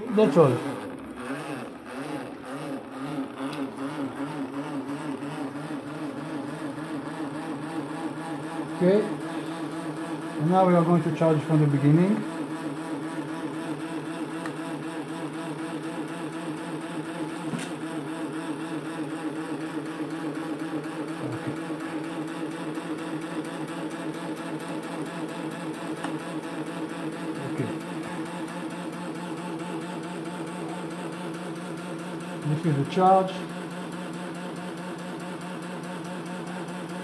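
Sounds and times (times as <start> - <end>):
generator mechanical hum and whir: 0.0 - 37.0.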